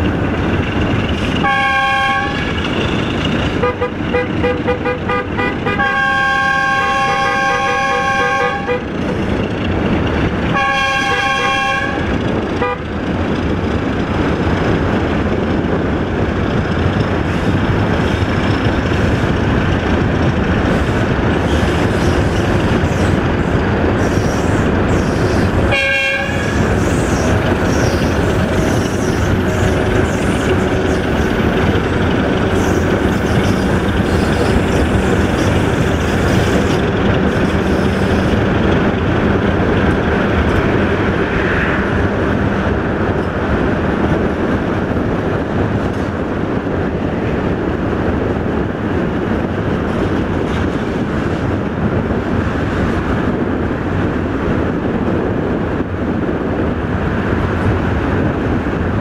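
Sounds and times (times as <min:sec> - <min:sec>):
road and wind rumble: 0:00.0 - 0:59.0
two-tone locomotive horn: 0:01.4 - 0:02.6, 0:03.6 - 0:09.0, 0:10.5 - 0:12.9, 0:25.4 - 0:27.2.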